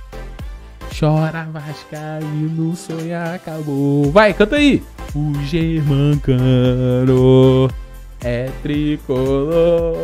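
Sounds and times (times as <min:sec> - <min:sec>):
man singing chant: 0:05.2 - 0:07.7.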